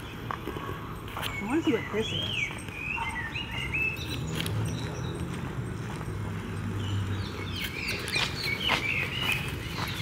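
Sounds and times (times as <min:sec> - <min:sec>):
songbirds chirping and whistling: 0:00.0 - 0:10.0
footsteps on gravel: 0:04.1 - 0:10.0.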